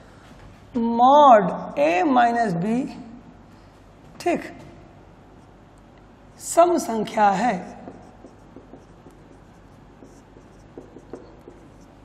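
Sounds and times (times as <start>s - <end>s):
marker writing on whiteboard: 7.0s - 12.0s.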